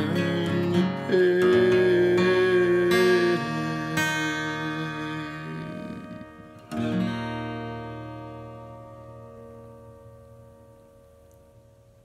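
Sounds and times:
acoustic guitar chord strummed: 0:00.0 - 0:12.0.

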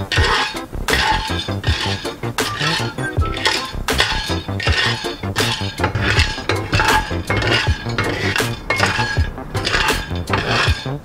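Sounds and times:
background music with steady beat: 0:00.0 - 0:11.0
peanuts rattling in frying pan: 0:00.0 - 0:11.0
wooden spatula scraping pan: 0:00.0 - 0:11.0.

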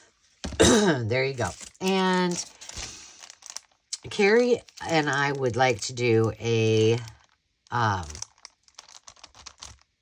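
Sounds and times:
plastic packaging crinkling: 0:01.2 - 0:10.0.

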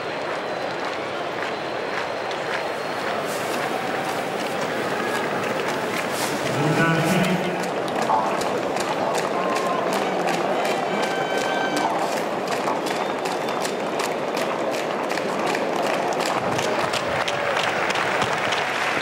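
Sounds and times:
crowd clapping: 0:00.0 - 0:19.0
crowd noise: 0:00.0 - 0:19.0.

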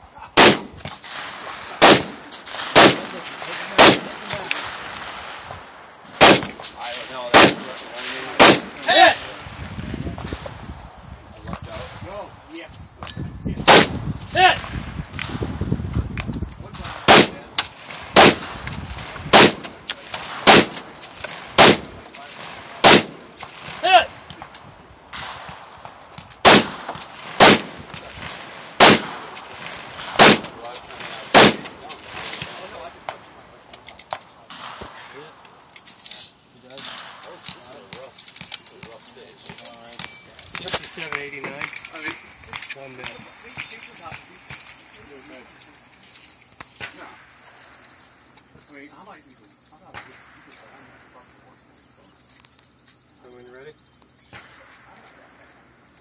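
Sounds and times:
gunshots: 0:00.4 - 0:09.6, 0:13.6 - 0:15.7, 0:16.7 - 0:24.5, 0:25.1 - 0:33.3, 0:34.5 - 0:35.3.

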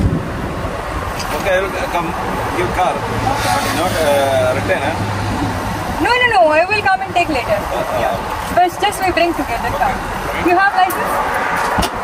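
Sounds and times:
road traffic noise: 0:00.0 - 0:12.0
man talking: 0:01.3 - 0:05.1.

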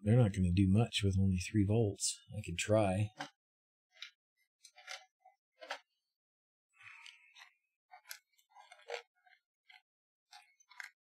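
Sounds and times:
small electronic parts clicking: 0:06.9 - 0:11.0.

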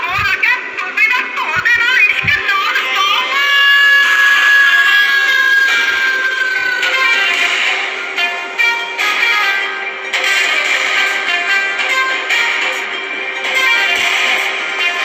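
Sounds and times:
song played backwards: 0:00.0 - 0:15.0.

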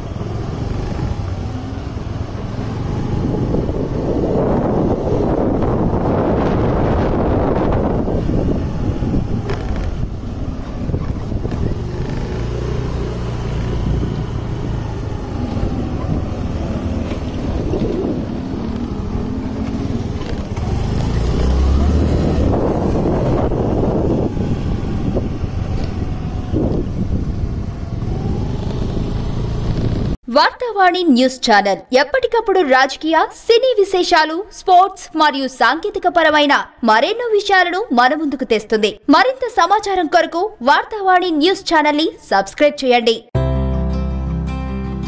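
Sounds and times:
motorcycle engine rumble: 0:00.0 - 0:30.2
road noise: 0:00.0 - 0:31.0
wind buffeting microphone: 0:00.5 - 0:30.2.

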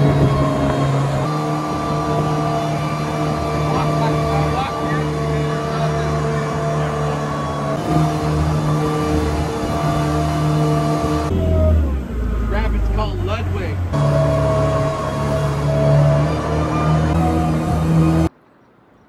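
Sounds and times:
jet boat engine running: 0:00.0 - 0:18.4
water rushing past hull: 0:00.0 - 0:18.6.

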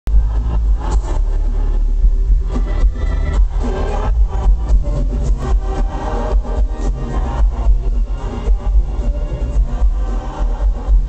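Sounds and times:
live pop concert music: 0:00.1 - 0:11.0.

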